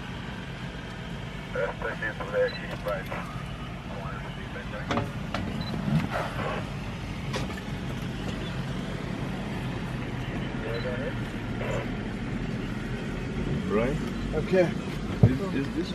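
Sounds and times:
vehicle engine running: 0.0s - 15.9s.

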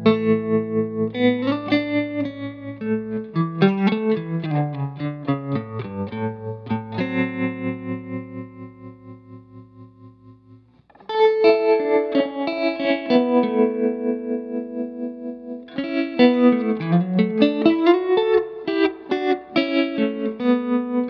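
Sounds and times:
electric guitar with tremolo: 0.0s - 21.0s
picked guitar notes: 0.0s - 21.0s.

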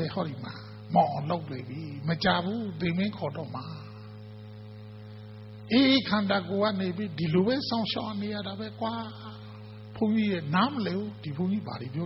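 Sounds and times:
man's voice: 0.0s - 3.9s, 5.7s - 9.4s
electrical mains hum: 0.0s - 12.0s.

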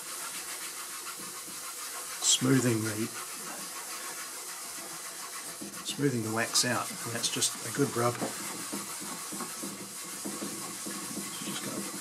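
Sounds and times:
cloth rag rubbing on wood: 0.0s - 12.0s.

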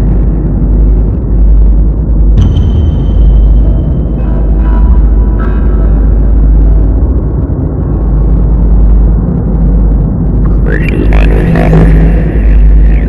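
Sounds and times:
loud low rumble: 0.0s - 13.0s.

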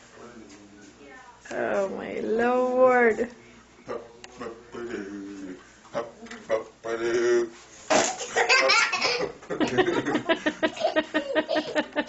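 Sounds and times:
hearty laughter: 8.3s - 12.0s.

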